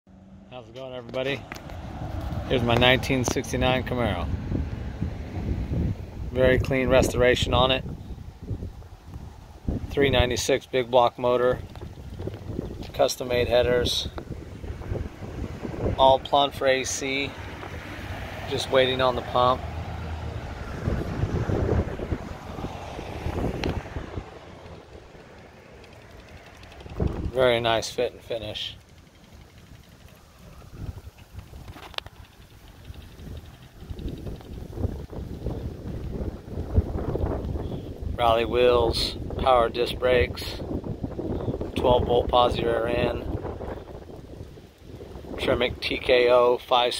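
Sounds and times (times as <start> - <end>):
wind buffeting microphone: 0.6 - 46.9.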